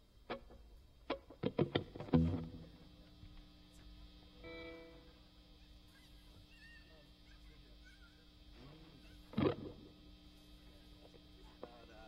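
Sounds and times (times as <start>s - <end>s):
amplifier hum: 0.0s - 12.0s.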